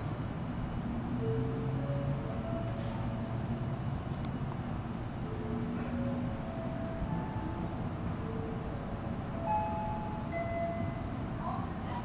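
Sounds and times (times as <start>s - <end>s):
train rumbling: 0.0s - 12.0s.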